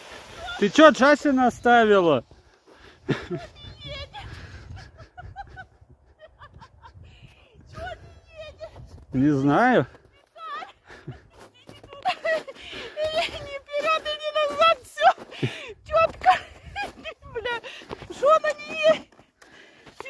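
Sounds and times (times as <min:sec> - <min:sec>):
people talking: 0:03.3 - 0:04.3, 0:11.4 - 0:19.0.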